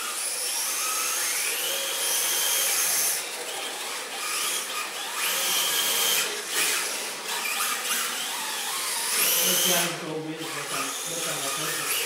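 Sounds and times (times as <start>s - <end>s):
electric motor whining: 0.0s - 12.0s.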